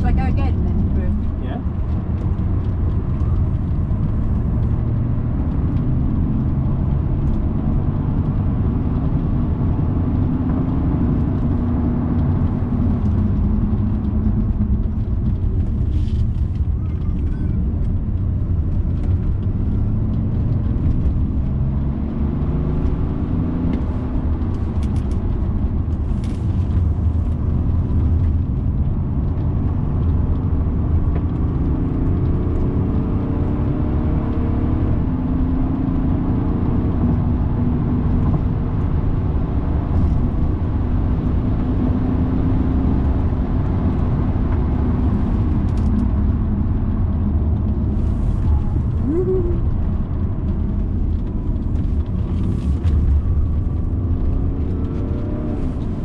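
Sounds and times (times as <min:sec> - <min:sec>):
diesel engine accelerating: 0:00.0 - 0:56.0
road noise inside car: 0:00.0 - 0:56.0.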